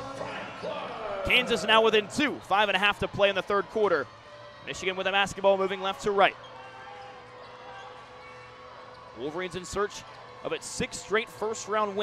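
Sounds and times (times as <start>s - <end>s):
faint basketball arena ambience: 0.0s - 12.0s.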